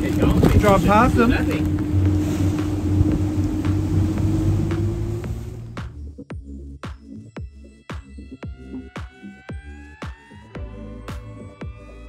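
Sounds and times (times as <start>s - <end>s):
water noise: 0.0s - 6.0s
wind: 0.0s - 6.0s
motorboat engine drone: 0.0s - 6.2s
electronic music with a beat: 5.8s - 12.0s.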